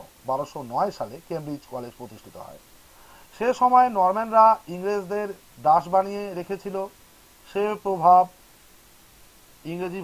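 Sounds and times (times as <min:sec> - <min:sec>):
narrator talking: 0:00.0 - 0:02.6, 0:03.3 - 0:06.9, 0:07.5 - 0:08.3, 0:09.6 - 0:10.0.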